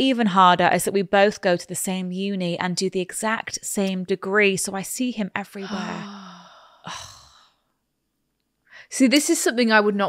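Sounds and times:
speech: 0.0s - 6.2s, 8.9s - 10.0s
woman sighing: 5.6s - 7.6s.

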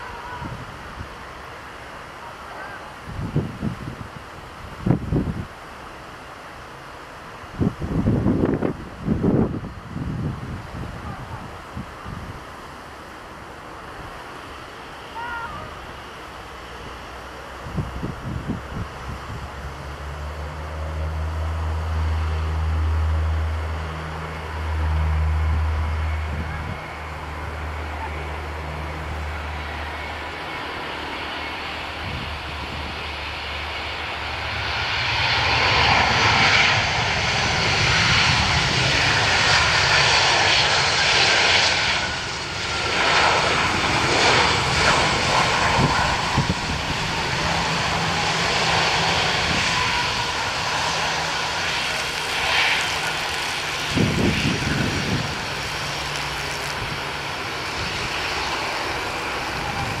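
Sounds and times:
jet engines on landing rollout: 0.0s - 60.0s.

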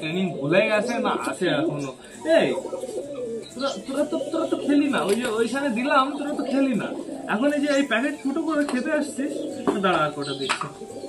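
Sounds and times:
man talking: 0.0s - 2.8s, 3.5s - 10.8s
pigeons cooing: 0.0s - 11.0s.

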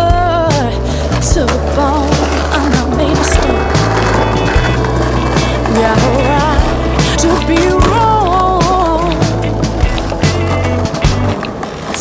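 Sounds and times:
music with bass line: 0.0s - 11.5s
skateboard wheels rolling on pavement: 0.0s - 12.0s.

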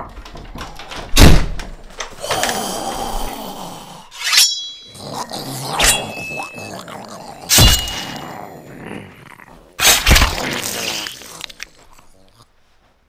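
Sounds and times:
creature growling: 2.2s - 4.2s, 4.9s - 12.6s
sharp hits with ringing edge: 4.2s - 5.0s, 7.5s - 8.2s.

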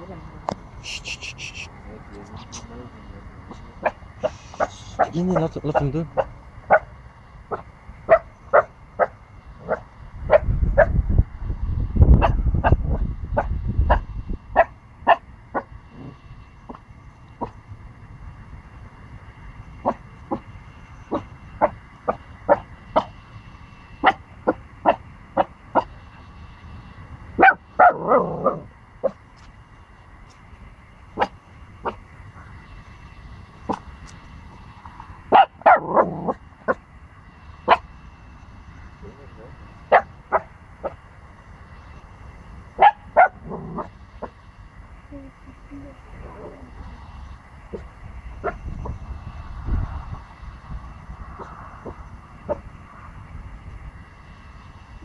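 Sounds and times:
low microphone rumble: 0.0s - 55.0s
puppy yapping: 3.8s - 6.9s, 27.4s - 29.2s.

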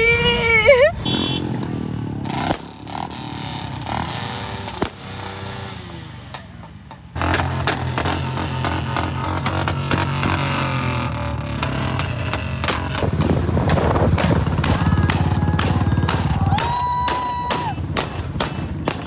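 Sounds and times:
motorcycle engines revving: 0.0s - 19.0s.

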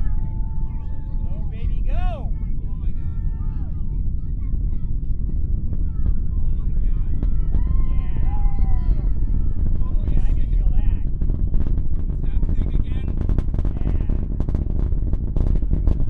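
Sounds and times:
people whooping and cheering: 0.0s - 3.7s, 5.9s - 10.5s
rocket engines rumbling: 0.0s - 16.0s.

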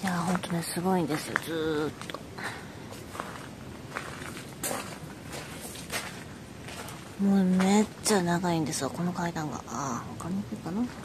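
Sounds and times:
soft footsteps on ground: 0.0s - 8.4s
outdoor background noise: 0.0s - 11.0s.

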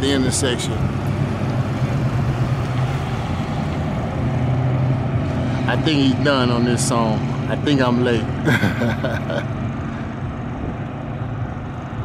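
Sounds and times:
car engine humming: 0.0s - 12.0s
road noise: 0.0s - 12.0s.

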